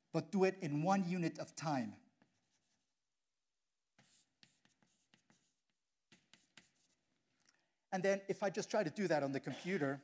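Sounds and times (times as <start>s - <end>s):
chalk tapping and scratching: 2.1s - 3.0s, 3.9s - 7.3s.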